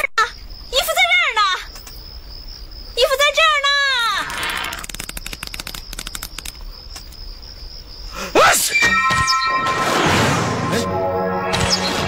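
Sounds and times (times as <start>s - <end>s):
insect chirring: 0.0s - 9.6s
rapid sharp clicks: 4.5s - 7.1s.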